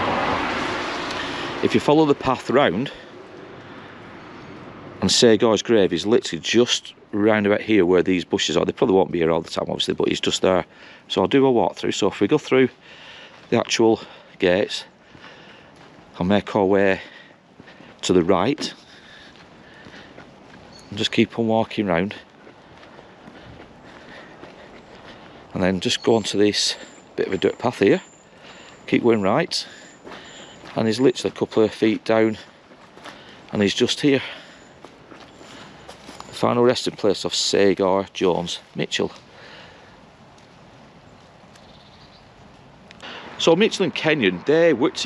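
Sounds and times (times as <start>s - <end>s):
footsteps on wet tarmac: 0.0s - 45.0s
outdoor hiss and rumble: 0.0s - 45.0s.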